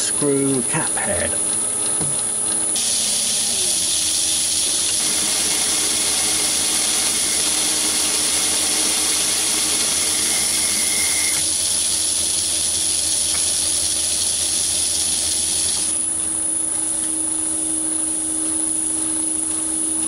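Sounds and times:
lathe drilling hiss: 0:02.8 - 0:16.1.

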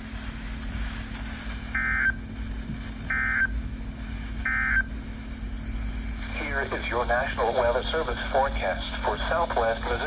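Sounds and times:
radio hum and hiss: 0:00.0 - 0:10.0.

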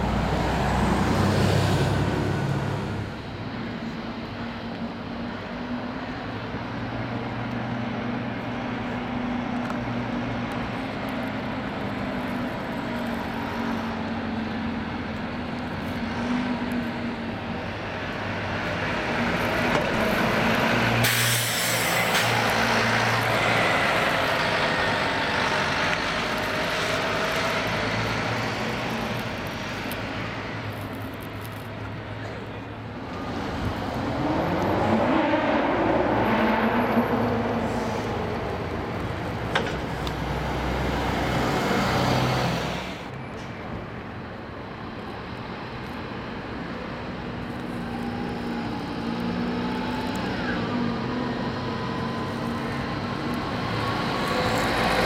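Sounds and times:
bus engine pulling away: 0:00.0 - 0:55.0
bus passing close: 0:00.0 - 0:55.0
air brake hiss: 0:21.0 - 0:22.4, 0:37.6 - 0:38.2.

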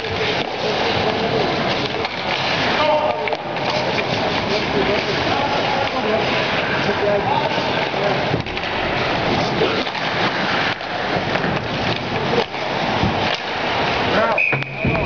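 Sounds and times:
din of ice hockey play: 0:00.0 - 0:15.0.

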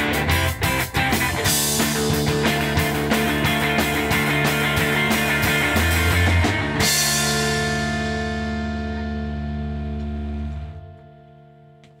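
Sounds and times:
rock band final chord: 0:00.0 - 0:12.0.

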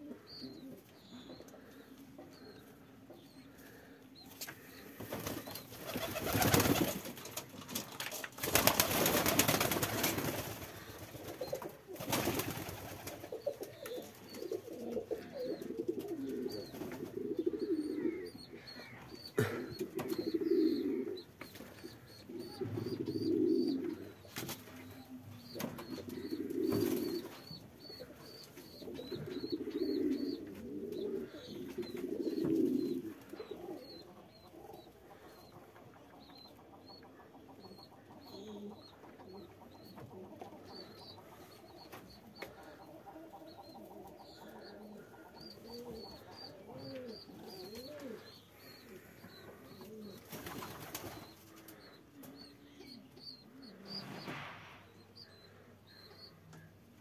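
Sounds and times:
pigeons cooing: 0:00.0 - 0:57.0
pigeon wings flapping: 0:05.1 - 0:10.7, 0:12.0 - 0:13.3, 0:50.3 - 0:51.2.

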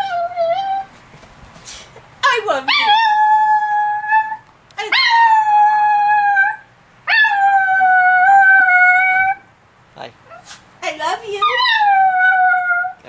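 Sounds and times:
small dog howling: 0:00.0 - 0:00.9, 0:02.7 - 0:09.4, 0:11.4 - 0:13.0.

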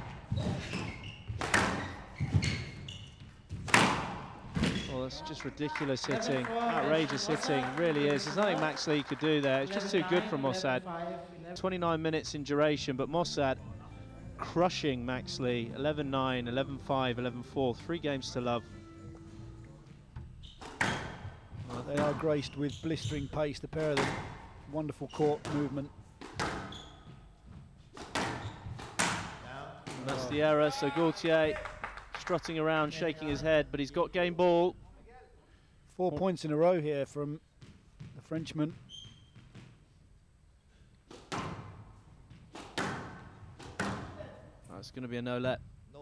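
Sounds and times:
squash ball hitting rackets and walls: 0:00.0 - 0:04.9, 0:20.1 - 0:22.4, 0:23.8 - 0:24.6, 0:25.2 - 0:30.2, 0:41.0 - 0:44.3
squash ball being struck: 0:03.6 - 0:04.8, 0:26.2 - 0:26.7, 0:27.9 - 0:30.2, 0:42.5 - 0:44.2.

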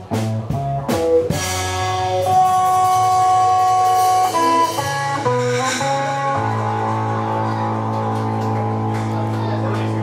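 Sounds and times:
electric guitar chord ringing: 0:01.9 - 0:10.0.

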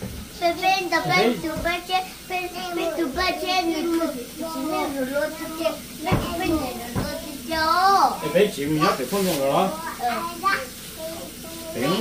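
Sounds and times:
girl singing: 0:00.5 - 0:08.1.

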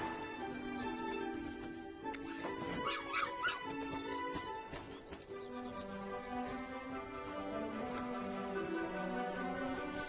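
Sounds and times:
background music: 0:00.0 - 0:10.0
puppy yipping: 0:02.8 - 0:03.8.

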